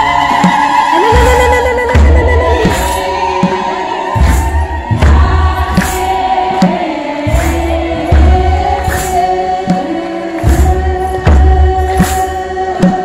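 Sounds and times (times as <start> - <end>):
choir chanting a hymn: 0.0 - 13.0
deep drum beat: 0.0 - 13.0.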